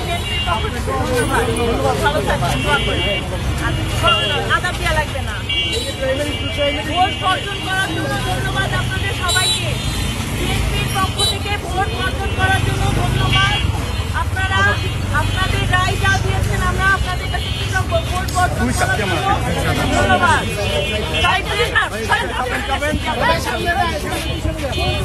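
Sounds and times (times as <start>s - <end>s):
people talking: 0.0s - 9.8s, 10.4s - 25.0s
road traffic noise: 0.0s - 25.0s.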